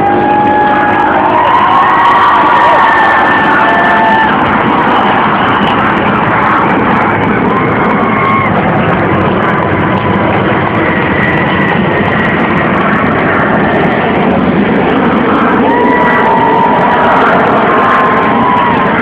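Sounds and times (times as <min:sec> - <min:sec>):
jet engines roaring overhead: 0:00.0 - 0:19.0.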